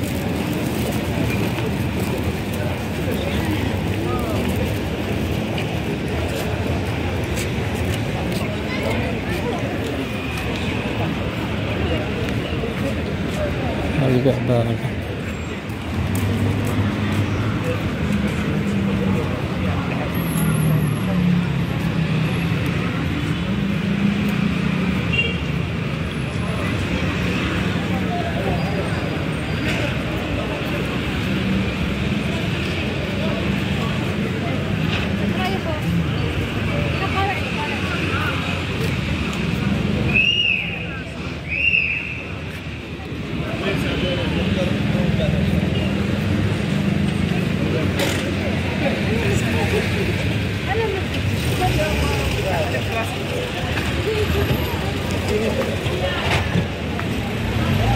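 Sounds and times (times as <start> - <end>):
passers-by talking: 0.0 - 57.9
traffic noise: 0.0 - 57.9.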